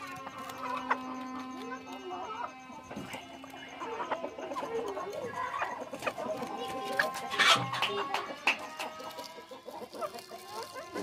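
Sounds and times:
hens clucking: 0:00.0 - 0:11.0.

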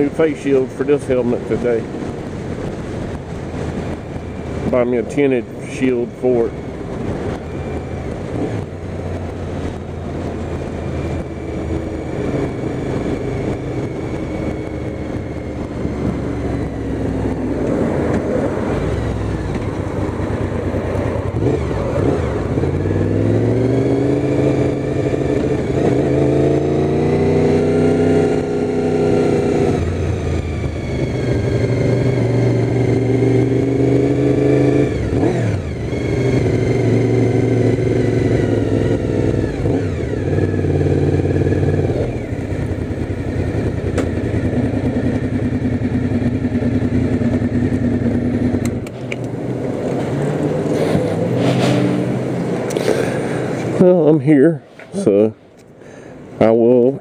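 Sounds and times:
motorcycle engine accelerating: 0:00.0 - 0:55.4.

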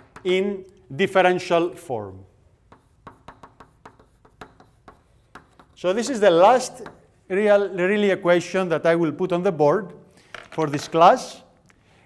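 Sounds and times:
chalk tapping on blackboard: 0:00.0 - 0:00.3, 0:02.5 - 0:07.2.

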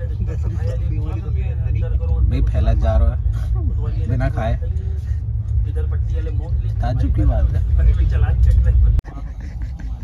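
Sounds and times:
train rumble: 0:00.0 - 0:10.0.

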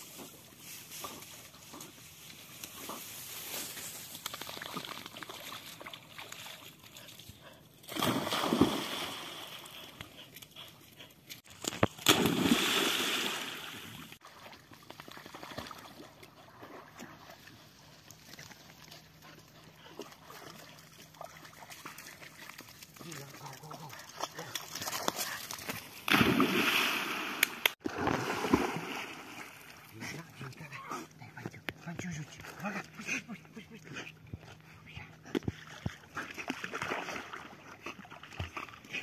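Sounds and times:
dogs splashing through water: 0:01.0 - 0:30.8, 0:35.5 - 0:39.0.

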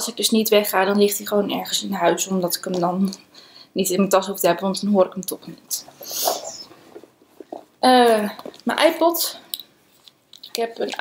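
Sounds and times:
woman speaking: 0:00.0 - 0:06.7, 0:07.8 - 0:09.5, 0:10.5 - 0:11.0
nose sniff: 0:06.0 - 0:07.0.

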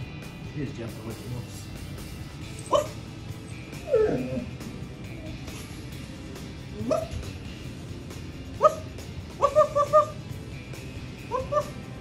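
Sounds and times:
puppy yipping barks: 0:02.6 - 0:03.0, 0:06.8 - 0:07.2, 0:08.6 - 0:10.2, 0:11.2 - 0:11.8.

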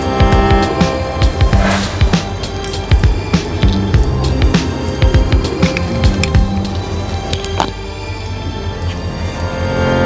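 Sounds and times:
background music with drum hits: 0:00.0 - 0:06.8.

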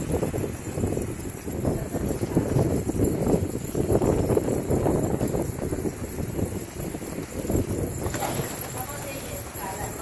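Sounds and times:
pigeons scuffling on concrete: 0:00.0 - 0:10.0.

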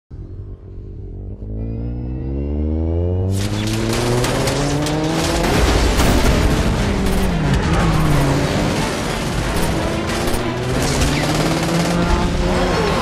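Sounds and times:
whine rising in pitch: 0:00.1 - 0:03.6
deep rumble: 0:00.1 - 0:09.4
explosion blast with crackles: 0:03.3 - 0:10.0.

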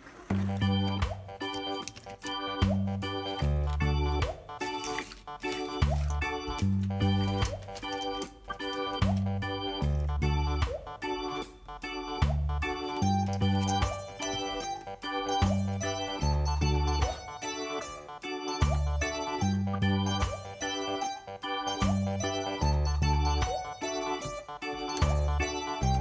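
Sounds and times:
keyboard tune over a beat: 0:00.2 - 0:26.0
bass line: 0:00.3 - 0:04.7, 0:05.8 - 0:07.6, 0:08.6 - 0:26.0.

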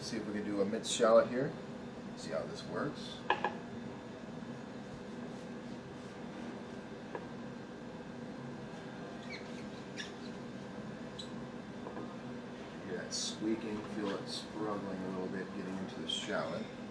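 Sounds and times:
steady background hum: 0:00.0 - 0:16.9
knife blade squeaking: 0:09.2 - 0:10.4, 0:11.1 - 0:11.4.

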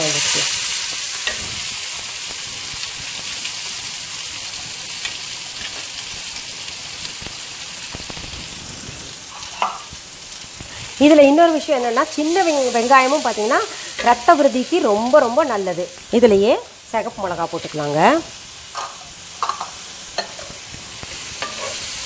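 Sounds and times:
onions sizzling in hot oil: 0:00.0 - 0:22.0.

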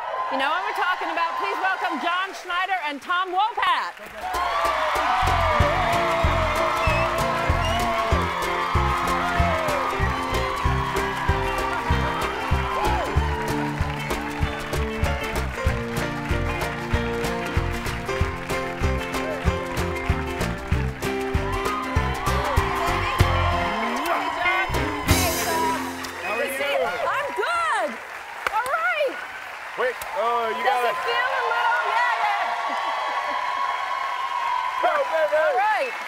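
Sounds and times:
audience clapping and cheering: 0:00.0 - 0:36.0
live band playing upbeat tune: 0:04.3 - 0:27.4.

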